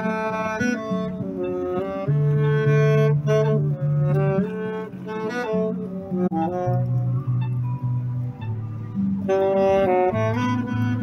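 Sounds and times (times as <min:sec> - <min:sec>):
low bass line backing track: 0:00.0 - 0:11.0
saxophone melody: 0:00.0 - 0:11.0.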